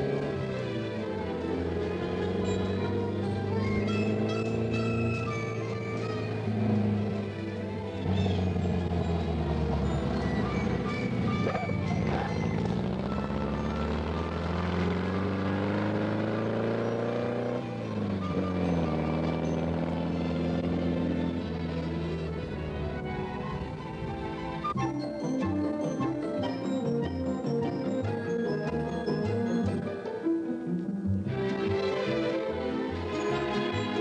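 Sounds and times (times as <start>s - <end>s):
background music: 0.0s - 34.0s
dune buggy engine driving off: 0.0s - 34.0s.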